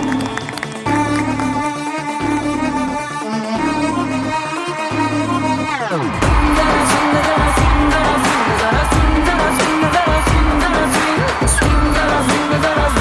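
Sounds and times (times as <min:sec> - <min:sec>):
pop song with singer and beat: 0:00.0 - 0:13.0.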